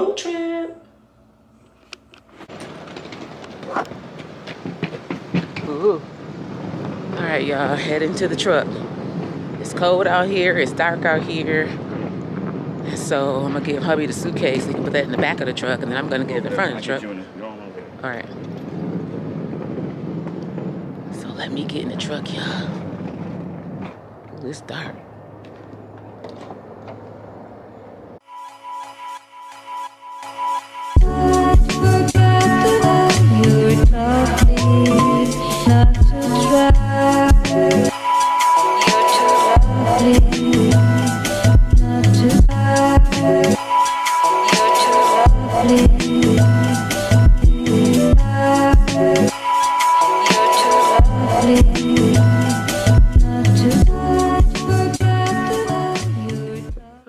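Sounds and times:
small knocks: 0:02.4 - 0:05.7
wind on microphone: 0:02.4 - 0:28.2, 0:31.0 - 0:56.9
steady low hum: 0:31.0 - 0:37.9.

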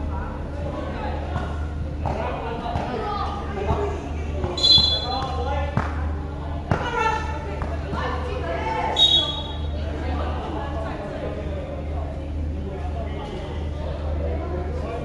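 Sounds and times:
players calling out: 0:04.5 - 0:05.5, 0:08.9 - 0:09.8.

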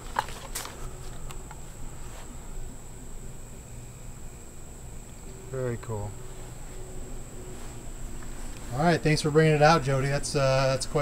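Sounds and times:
high insect drone: 0:00.0 - 0:11.0.

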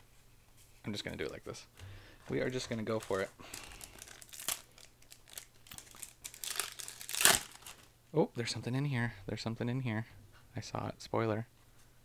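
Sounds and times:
foil wrapper crinkling: 0:02.3 - 0:07.9.

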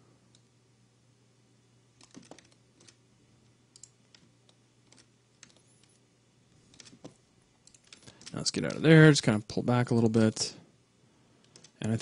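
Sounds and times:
computer keyboard clicking: 0:02.0 - 0:03.0, 0:03.7 - 0:05.6, 0:06.7 - 0:08.4, 0:11.4 - 0:11.8.

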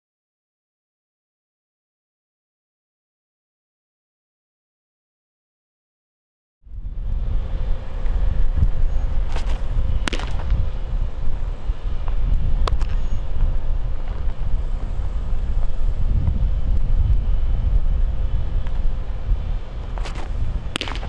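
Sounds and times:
wind buffeting microphone: 0:06.7 - 0:21.0
ball smacking into leather mitt: 0:09.3 - 0:10.5, 0:20.0 - 0:21.0.

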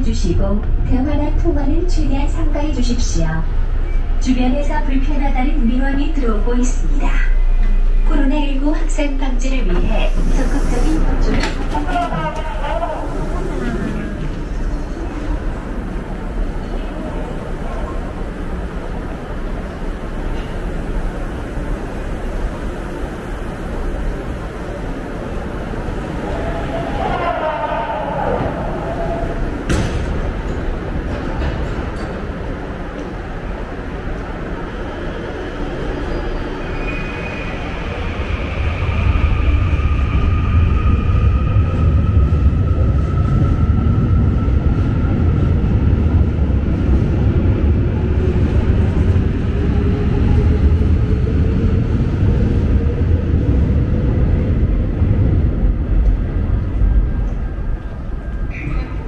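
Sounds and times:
electric train rumbling on rails: 0:00.0 - 0:59.0.

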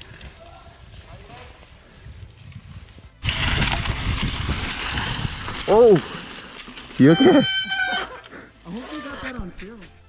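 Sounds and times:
wind noise: 0:00.0 - 0:06.3
bike tyres on dirt trail: 0:00.0 - 0:10.0
low rumbling: 0:01.8 - 0:08.2.

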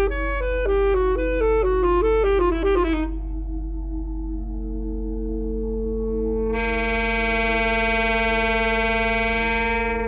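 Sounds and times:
low electronic drone: 0:00.0 - 0:10.0.

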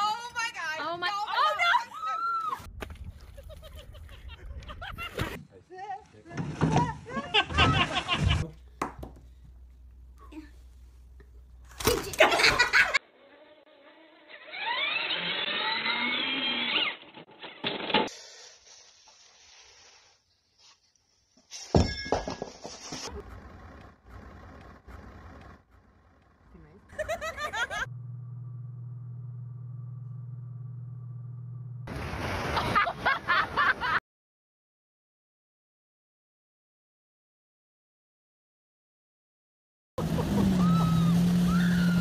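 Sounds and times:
motorboat engine humming: 0:08.5 - 0:11.8, 0:23.1 - 0:32.2, 0:40.0 - 0:42.0
metal objects clattering on concrete: 0:21.6 - 0:23.1
steady low rumble: 0:27.8 - 0:31.9.

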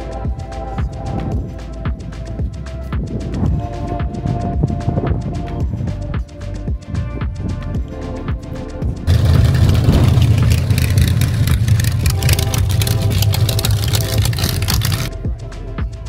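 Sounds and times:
background music: 0:00.0 - 0:16.0
loud car engine driving by: 0:09.1 - 0:15.1.

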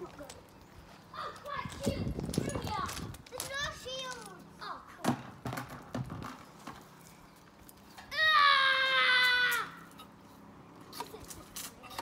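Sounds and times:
children shouting and squealing: 0:01.1 - 0:05.0, 0:08.0 - 0:10.2.

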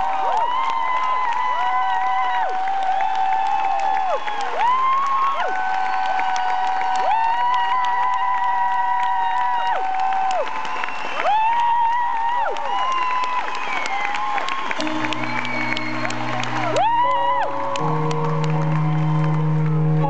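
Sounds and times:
crowd cheering and clapping: 0:00.0 - 0:20.0.

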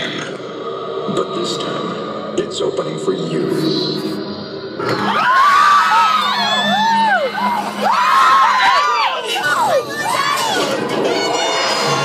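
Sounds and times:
riders screaming: 0:05.1 - 0:12.0.

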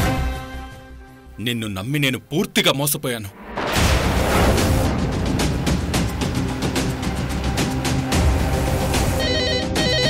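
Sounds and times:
deep boom music sting: 0:03.4 - 0:07.8.

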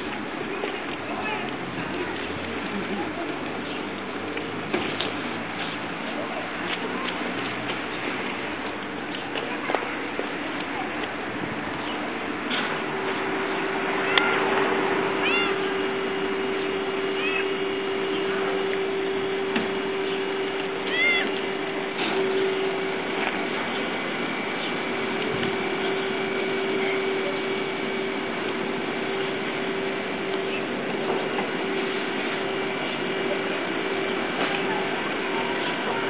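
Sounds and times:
steady low hum: 0:00.0 - 0:36.0
cat meowing: 0:15.2 - 0:15.7, 0:20.9 - 0:21.3.

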